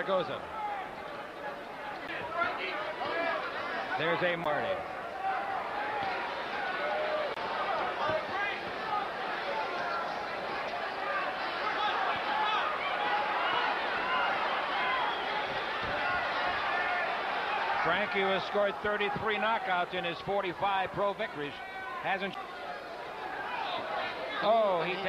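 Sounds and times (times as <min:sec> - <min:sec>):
crowd shouting: 0:00.0 - 0:25.0.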